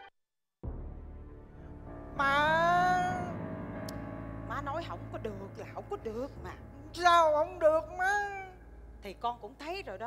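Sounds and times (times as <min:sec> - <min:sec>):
soft background music: 0:00.6 - 0:10.0.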